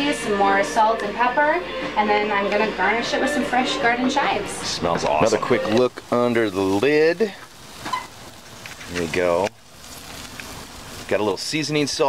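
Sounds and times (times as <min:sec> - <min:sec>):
chicken sizzling on a grill: 0:04.6 - 0:12.0.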